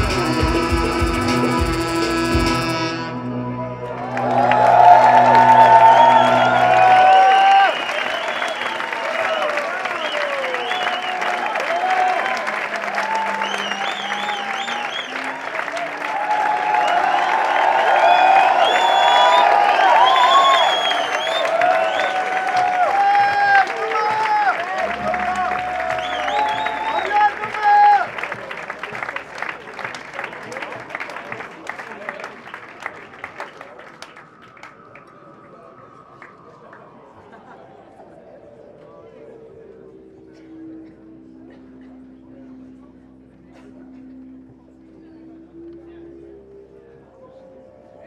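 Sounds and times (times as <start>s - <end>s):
saxophone and synthesizer music: 0.0s - 4.4s, 24.6s - 28.2s
audience applause and cheering: 3.8s - 38.3s.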